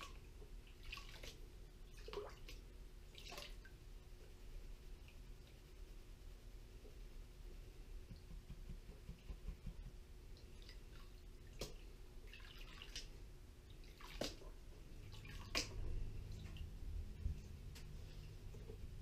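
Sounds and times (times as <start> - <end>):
water sloshing in a pan: 0.0 - 3.8, 10.5 - 16.7
sharp water splashes: 13.8 - 15.8.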